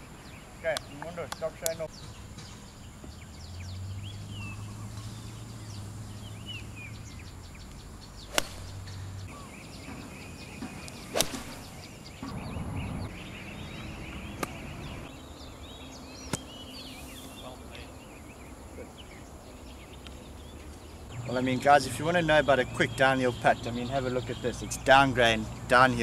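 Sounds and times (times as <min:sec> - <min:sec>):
birds chirping: 0:00.0 - 0:26.0
golf club striking ball: 0:08.2 - 0:09.3, 0:10.8 - 0:11.9.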